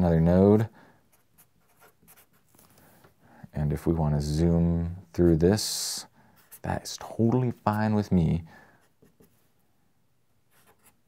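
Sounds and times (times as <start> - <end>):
felt-tip marker scratching on paper: 1.1 - 2.5.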